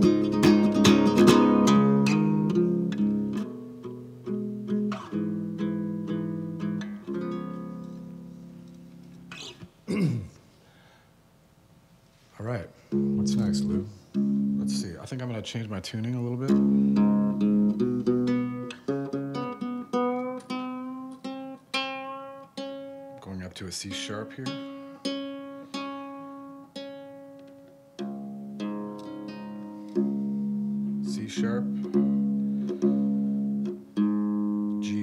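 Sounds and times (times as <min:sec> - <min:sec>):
ukulele chord strummed: 0:00.0 - 0:09.4, 0:12.9 - 0:14.8, 0:16.4 - 0:23.2, 0:23.9 - 0:35.0.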